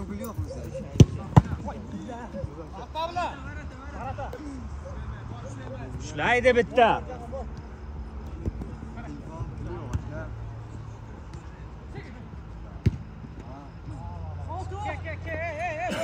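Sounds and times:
football being kicked: 0.9 - 1.8, 12.8 - 13.2.

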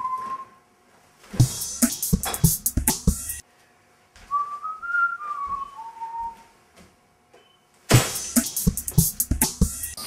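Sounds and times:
person whistling: 0.0 - 0.6, 4.3 - 6.5.

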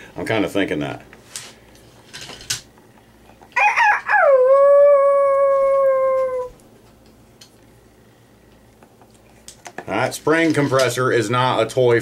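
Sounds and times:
long animal call: 4.0 - 6.6.

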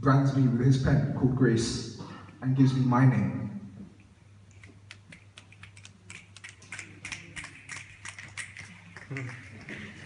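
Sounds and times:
audience finger snaps: 4.5 - 10.0.

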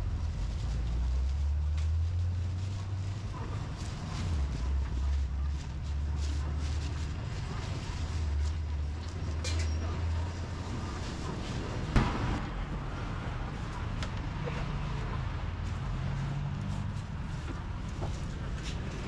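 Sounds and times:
low rumble: 0.0 - 19.0.

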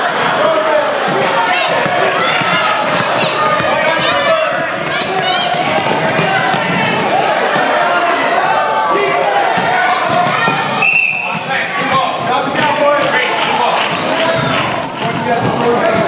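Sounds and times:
voices echoing in a gym: 0.0 - 16.0
basketball bouncing on hardwood floor: 1.0 - 7.7, 9.5 - 10.7.

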